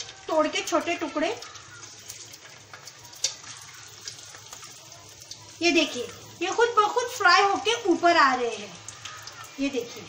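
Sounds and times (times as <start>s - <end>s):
dough sizzling in hot oil: 0.0s - 10.0s.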